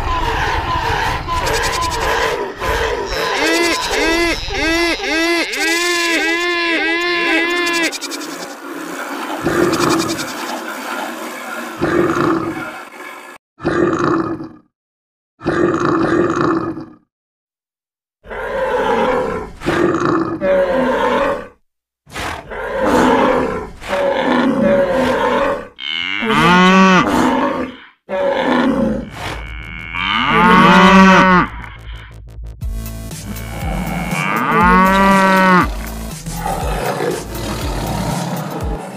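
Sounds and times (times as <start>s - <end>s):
animal grunts and roars: 0.9s - 10.8s, 11.5s - 14.7s, 15.4s - 17.1s, 18.2s - 32.1s, 33.2s - 38.9s
long pitched animal calls: 1.2s - 10.8s, 24.7s - 32.1s.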